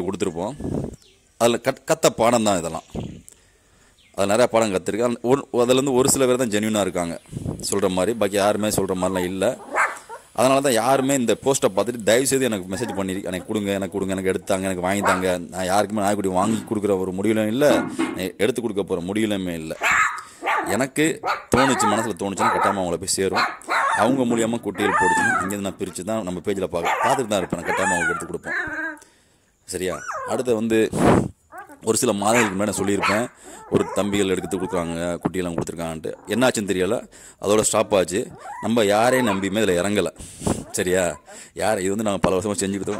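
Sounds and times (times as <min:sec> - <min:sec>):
person talking: 0:04.2 - 0:09.7, 0:10.4 - 0:20.0, 0:20.6 - 0:29.0, 0:31.7 - 0:42.9
puppies barking: 0:09.0 - 0:11.4, 0:12.1 - 0:16.8, 0:17.6 - 0:18.2, 0:19.8 - 0:26.0, 0:26.6 - 0:29.0, 0:31.5 - 0:35.3, 0:36.0 - 0:36.7, 0:38.1 - 0:40.0, 0:40.6 - 0:42.9
puppies yipping and whimpering: 0:12.6 - 0:15.4, 0:23.4 - 0:25.6, 0:26.9 - 0:29.0, 0:29.9 - 0:30.5, 0:31.5 - 0:35.1, 0:38.3 - 0:39.6.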